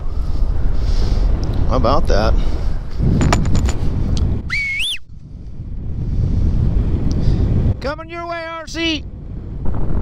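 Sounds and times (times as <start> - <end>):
wind rushing over microphone: 0.0 - 10.0
rising whistle: 4.4 - 5.1.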